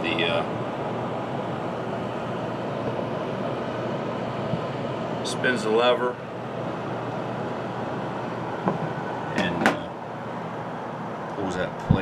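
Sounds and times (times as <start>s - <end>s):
furnace fan whirring: 0.0s - 12.0s.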